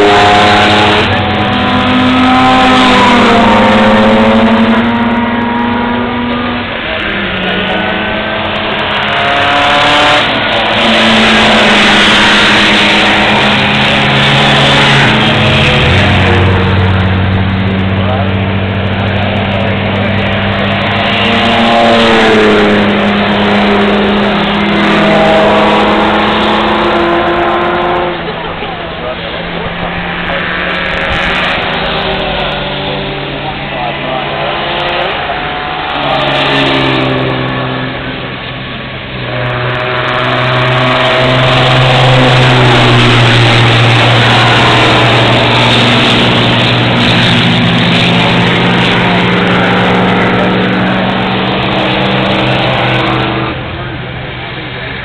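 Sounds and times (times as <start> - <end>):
race car engines: 0.0 - 55.0.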